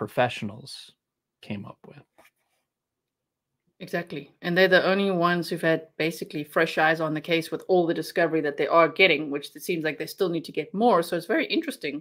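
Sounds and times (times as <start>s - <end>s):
person speaking: 0.0s - 2.2s.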